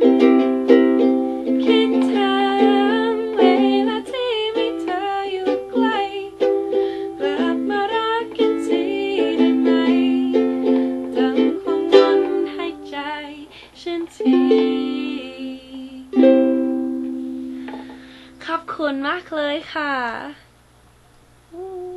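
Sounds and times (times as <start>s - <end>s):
ukulele strumming: 0.0s - 18.3s
person singing: 1.0s - 16.4s, 21.5s - 21.9s.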